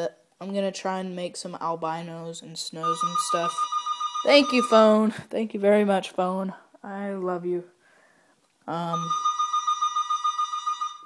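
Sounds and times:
telephone electronic ringer trilling: 2.8s - 4.9s, 8.9s - 11.0s.

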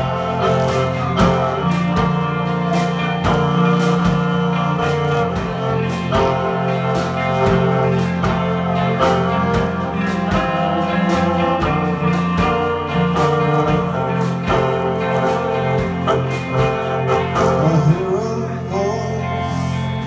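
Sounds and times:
drum hits: 0.0s - 17.6s
bowed violin: 0.0s - 20.0s
guitar: 0.0s - 20.0s.

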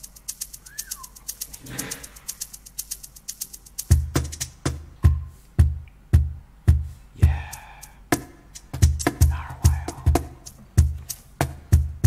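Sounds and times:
drum machine hi-hat ticks: 0.0s - 12.0s
deep kick drum: 5.0s - 7.6s, 8.8s - 12.0s.

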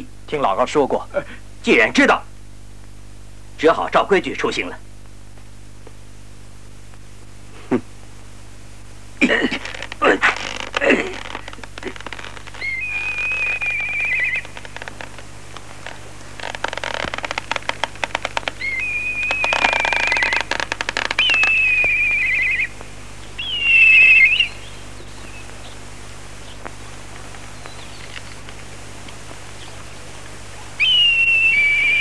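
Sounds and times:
rapid run of clicks: 14.3s - 18.6s
high whistled notes with warble: 21.2s - 22.7s, 30.8s - 32.0s.

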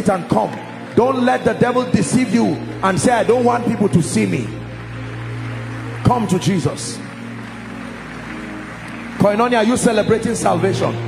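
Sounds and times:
soft sustained chord music: 0.0s - 11.0s.

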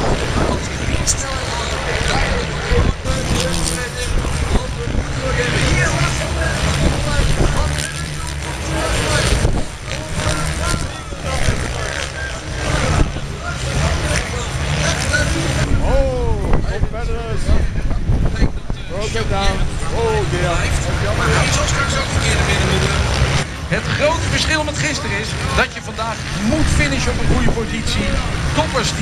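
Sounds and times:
wind buffeting microphone: 0.0s - 1.4s, 9.2s - 10.0s, 15.6s - 20.2s
distant dirt bike engines: 0.0s - 29.0s
indistinct voices: 0.0s - 29.0s.

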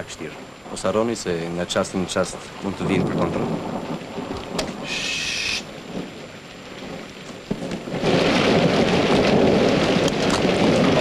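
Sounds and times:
steady rain: 0.0s - 11.0s
thunder rolling: 0.0s - 11.0s
brief hiss: 4.8s - 5.7s.

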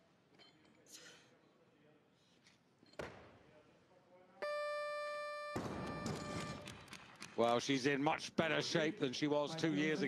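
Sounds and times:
electronic buzzer beep: 4.4s - 6.6s.

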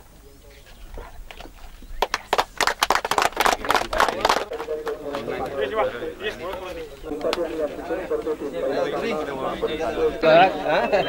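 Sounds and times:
group of people clapping: 2.0s - 8.4s.

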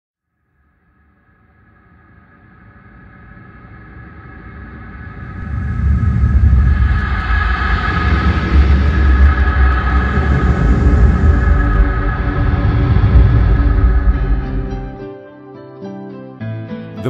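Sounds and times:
sustained droning tones: 0.5s - 15.0s
deep rumble: 1.7s - 15.0s.

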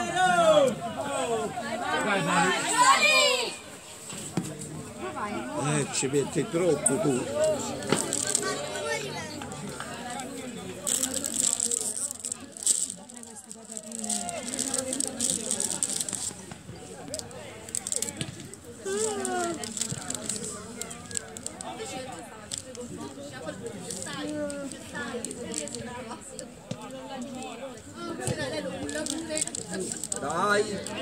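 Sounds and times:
people shouting on football pitch: 0.0s - 3.7s.

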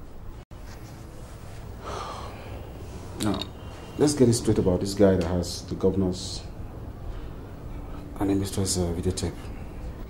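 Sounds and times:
low room hum and hiss: 0.0s - 10.0s.

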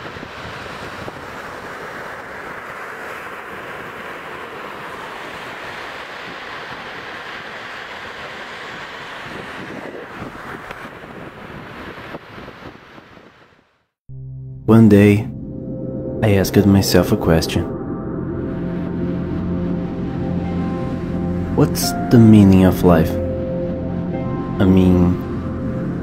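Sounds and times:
steady rushing noise: 0.0s - 13.9s, 16.1s - 26.0s.

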